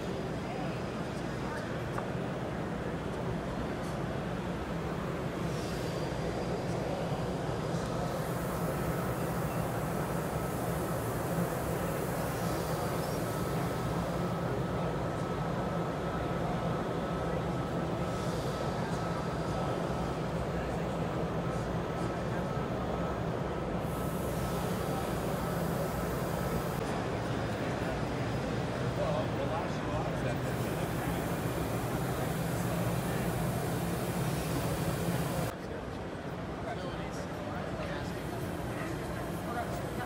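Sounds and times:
indistinct crowd chatter: 0.0s - 40.0s.

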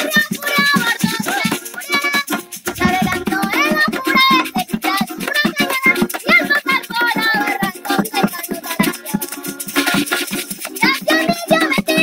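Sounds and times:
girl singing: 0.0s - 9.7s, 10.8s - 12.0s
man strumming small guitar: 0.0s - 12.0s
maracas shaking: 0.0s - 12.0s.

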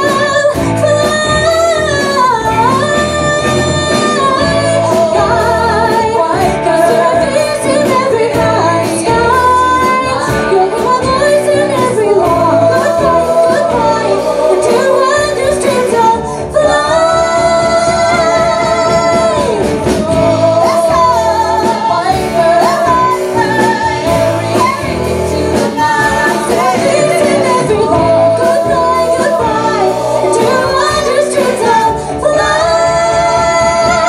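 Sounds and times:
punk rock band playing: 0.0s - 34.0s
women singing in harmony: 0.0s - 34.0s.

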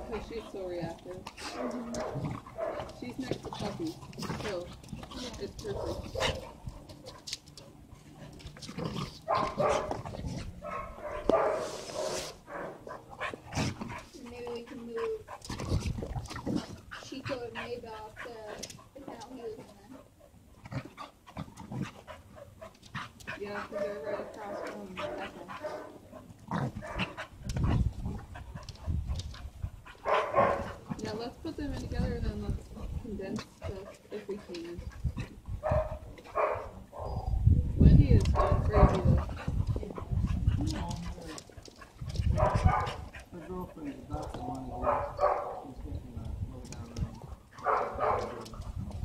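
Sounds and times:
dogs scuffling: 0.0s - 37.0s, 37.7s - 49.0s
dogs vocalizing: 0.0s - 49.0s.

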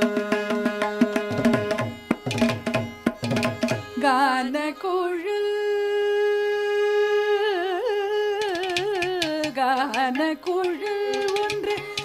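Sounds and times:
woman singing ornamented notes: 3.4s - 12.0s.

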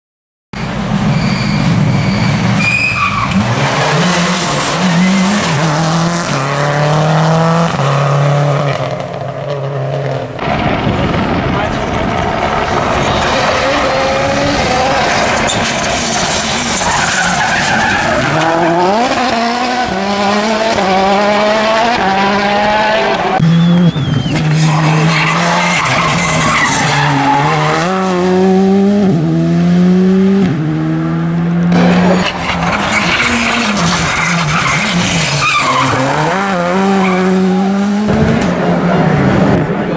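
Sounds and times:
rally cars accelerating hard: 0.6s - 39.9s.

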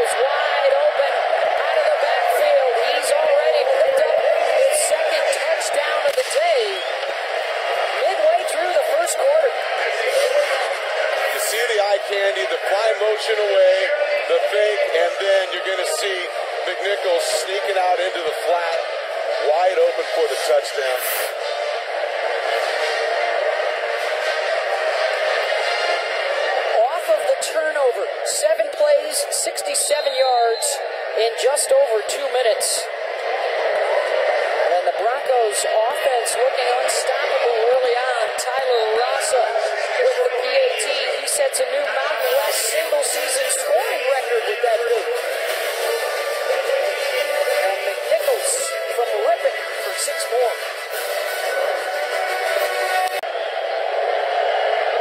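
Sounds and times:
stadium crowd noise: 0.0s - 55.0s.

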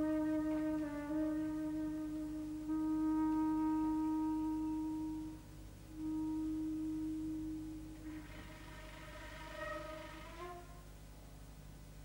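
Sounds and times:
woodwind sustained note: 0.0s - 11.2s.

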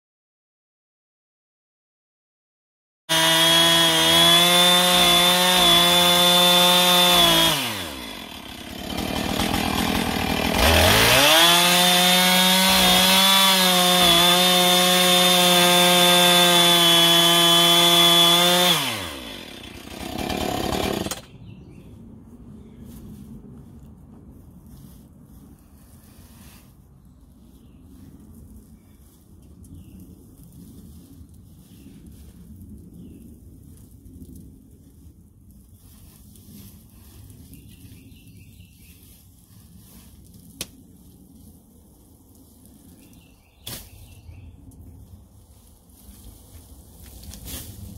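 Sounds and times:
chainsaw cutting straw: 3.1s - 21.3s, 42.4s - 44.2s, 46.0s - 47.9s
rustling of straw: 21.9s - 47.9s.

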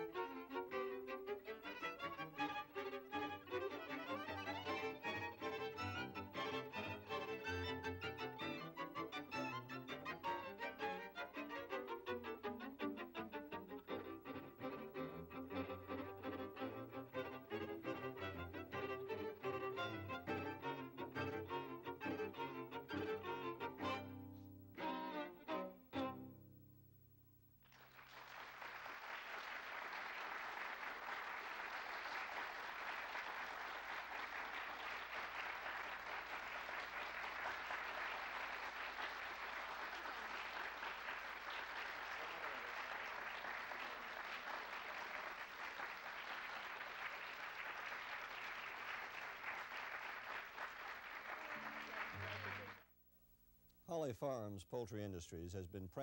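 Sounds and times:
audience applauding: 2.6s - 10.4s, 27.6s - 52.9s.

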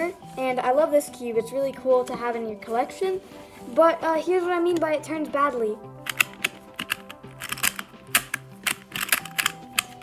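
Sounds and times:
background music: 0.0s - 10.0s
plastic puzzle clacking: 6.0s - 10.0s.

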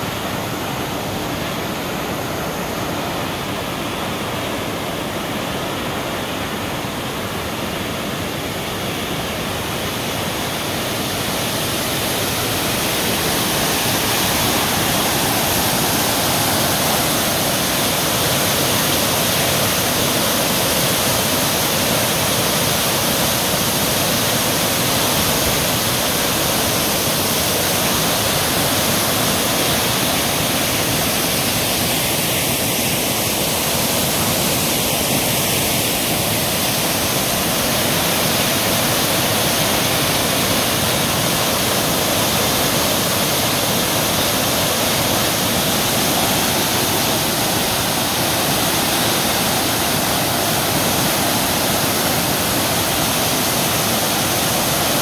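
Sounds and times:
water jet rushing: 8.7s - 55.0s.

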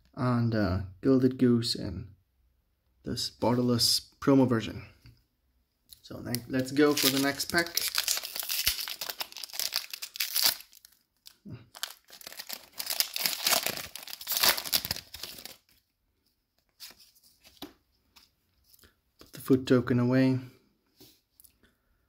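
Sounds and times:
foil wrapper tearing and crinkling: 6.6s - 15.8s.

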